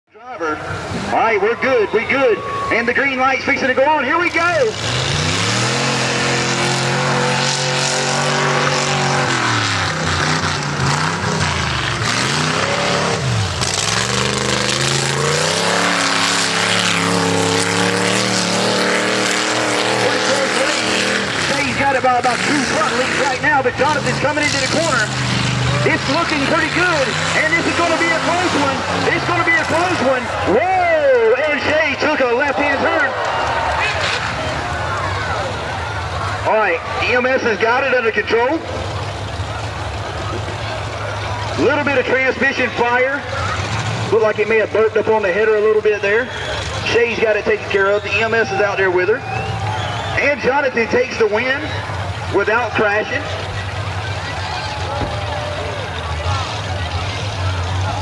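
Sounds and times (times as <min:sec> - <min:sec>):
faint crowd voices: 0:00.1 - 0:58.0
truck engine droning: 0:00.1 - 0:58.0.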